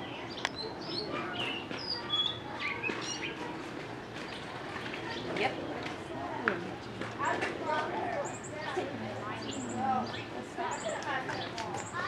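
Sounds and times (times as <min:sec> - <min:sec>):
small birds chirping: 0:00.0 - 0:05.4, 0:08.2 - 0:12.0.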